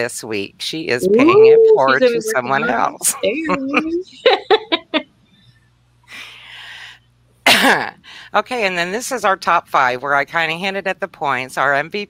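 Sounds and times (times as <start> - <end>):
woman clearing her throat: 7.5 - 7.9.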